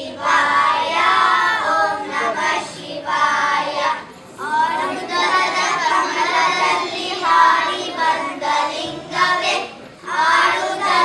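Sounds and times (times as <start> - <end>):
children singing in unison: 0.0 - 11.0.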